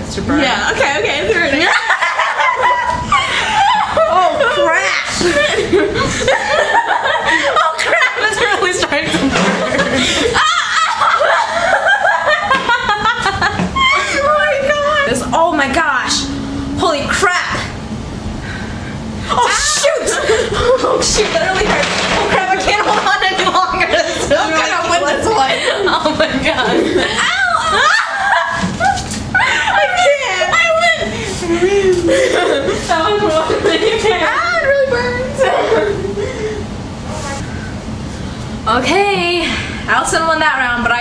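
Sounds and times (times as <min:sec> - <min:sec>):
young women laughing: 0:00.8 - 0:15.5, 0:19.2 - 0:36.7.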